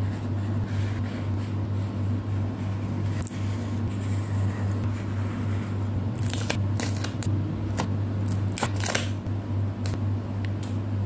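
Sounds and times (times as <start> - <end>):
steady low hum: 0.0 - 11.0
plastic sheets crinkling: 6.2 - 7.3.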